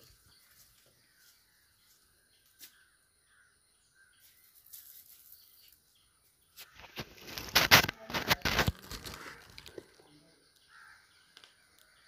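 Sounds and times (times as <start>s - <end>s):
rustling crinkling handling noise: 6.7s - 10.0s.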